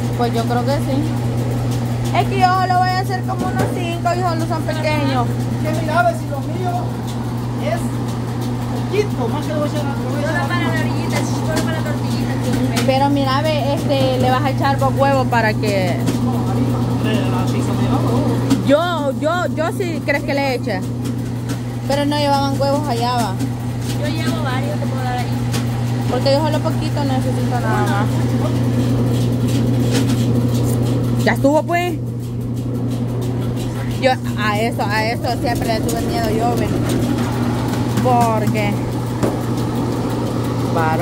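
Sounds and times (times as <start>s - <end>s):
voices talking: 0.0s - 29.2s, 32.8s - 39.2s, 40.4s - 41.0s
grinding mill motor humming: 0.0s - 41.0s.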